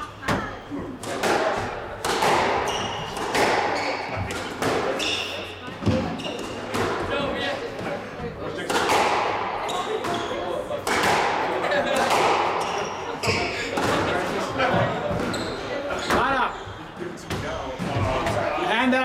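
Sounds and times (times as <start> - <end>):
squash ball hitting walls: 0.2 - 16.4
sneakers squeaking on hardwood: 2.2 - 7.3, 9.6 - 10.6, 12.6 - 14.0, 14.6 - 18.5.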